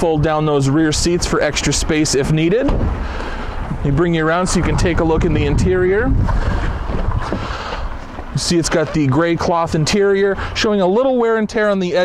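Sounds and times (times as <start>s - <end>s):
wind rumbling on microphone: 0.0s - 10.6s.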